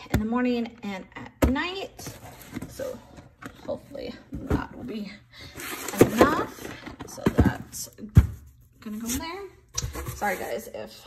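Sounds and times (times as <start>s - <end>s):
cardboard box scraping: 8.8s - 10.7s.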